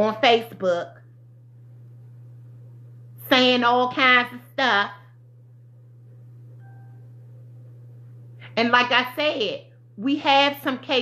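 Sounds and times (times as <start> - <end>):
steady low hum: 0.0 - 11.0
faint chime-like tone: 6.6 - 7.0.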